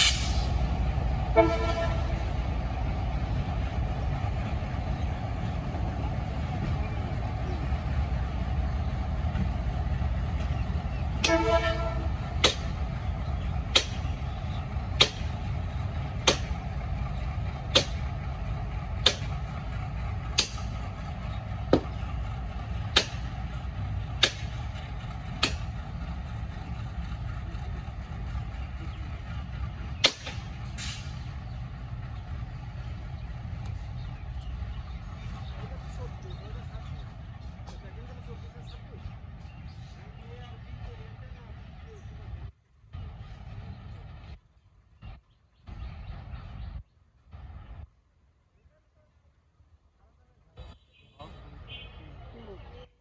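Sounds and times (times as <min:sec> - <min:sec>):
diesel locomotives rumbling: 0:00.0 - 0:53.0.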